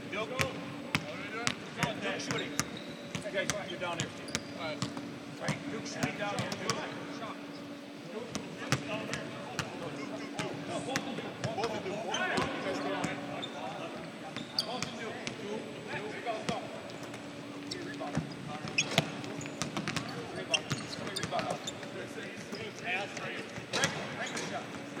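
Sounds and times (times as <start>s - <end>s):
basketballs bouncing on hardwood: 18.1s - 20.1s.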